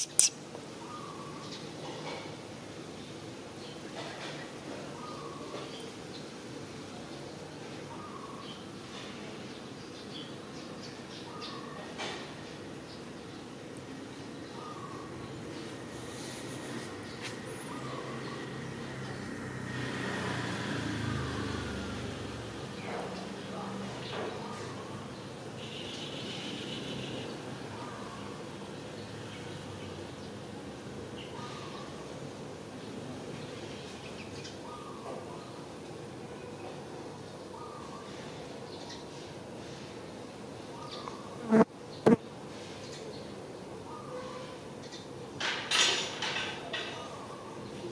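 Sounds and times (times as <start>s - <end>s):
vehicle passing by: 15.8s - 23.9s
flying insect buzzing: 41.4s - 42.2s.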